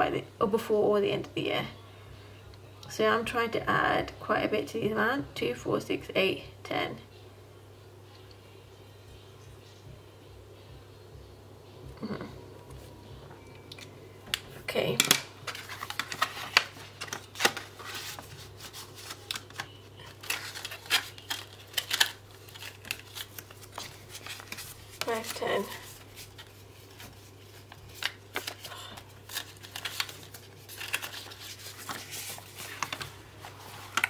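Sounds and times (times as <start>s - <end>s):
low steady hum: 0.0s - 34.0s
banknotes rustling and flicking: 14.3s - 34.0s.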